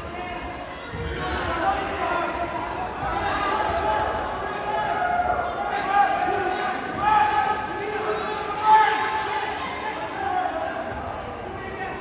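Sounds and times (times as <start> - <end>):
people shouting in gymnasium: 0.0 - 12.0.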